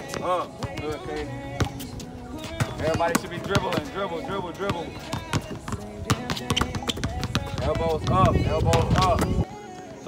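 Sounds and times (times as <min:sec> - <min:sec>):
basketballs bouncing on hard court: 0:00.0 - 0:09.5.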